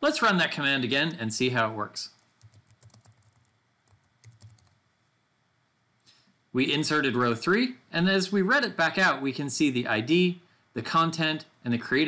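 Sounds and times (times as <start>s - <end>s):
faint keyboard typing: 2.1s - 4.8s.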